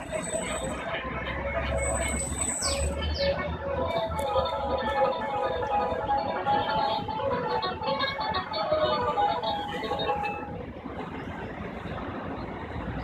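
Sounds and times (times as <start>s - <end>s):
plucked banjo tune: 0.0s - 12.3s
low traffic hum: 0.0s - 13.0s.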